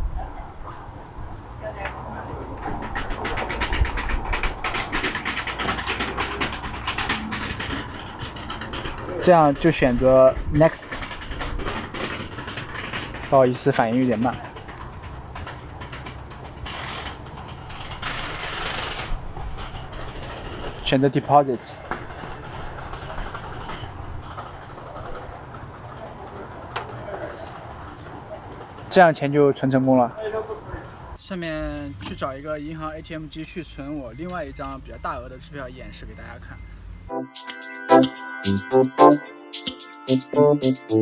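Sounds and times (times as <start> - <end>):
rapid mechanical clicking: 2.6 - 20.8.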